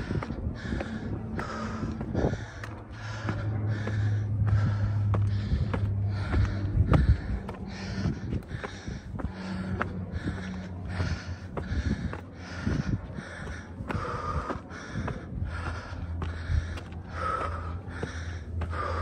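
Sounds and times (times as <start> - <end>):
footsteps on gravel and stone: 0.0 - 19.0
low steady hum: 0.0 - 19.0
man panting heavily: 0.0 - 19.0.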